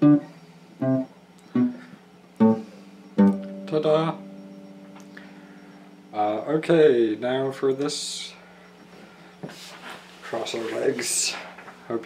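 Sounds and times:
electric guitar picked slowly: 0:00.0 - 0:07.7.

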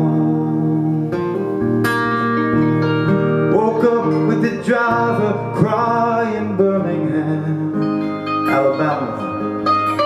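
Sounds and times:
man singing: 0:00.0 - 0:01.3, 0:03.4 - 0:09.5
acoustic guitar strumming: 0:00.0 - 0:10.0.

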